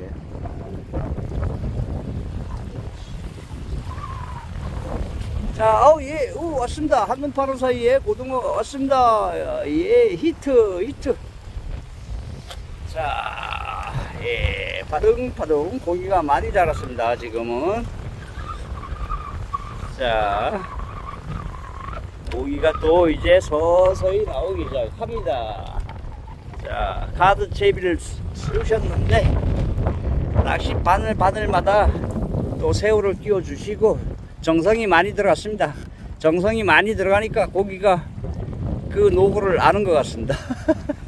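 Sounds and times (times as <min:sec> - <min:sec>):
seawater washing against rocks: 0:00.0 - 0:41.0
wind buffeting microphone: 0:00.0 - 0:41.0.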